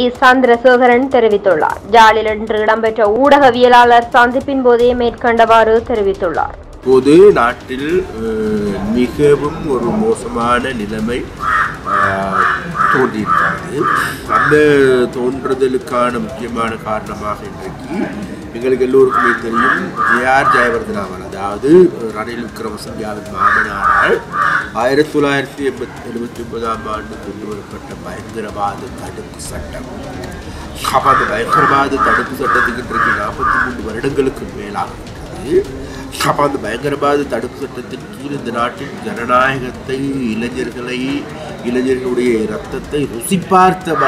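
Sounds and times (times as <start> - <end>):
man speaking into microphones: 6.8 - 44.0
bird calling: 7.8 - 15.1, 18.0 - 21.1, 23.2 - 25.0, 30.4 - 34.4, 43.4 - 44.0
crow cawing: 8.7 - 15.0, 18.9 - 21.0, 23.2 - 25.0, 30.5 - 34.3, 43.8 - 44.0.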